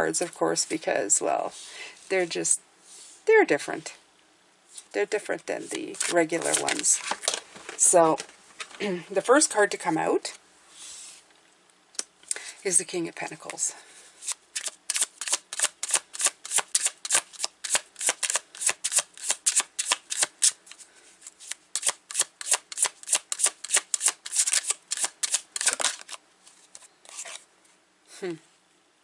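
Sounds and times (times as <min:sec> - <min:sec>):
cards being shuffled: 0:05.9 - 0:08.8, 0:14.2 - 0:27.4.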